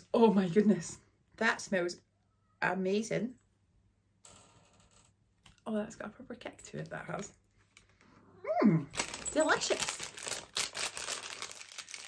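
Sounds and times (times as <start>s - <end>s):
paper packet crinkling: 9.0s - 12.0s.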